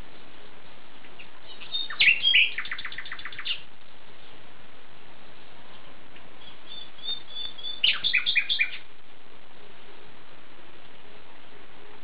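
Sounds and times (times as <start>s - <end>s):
songbird singing: 0.0s - 4.5s, 5.2s - 9.2s
steady hiss: 0.0s - 12.0s.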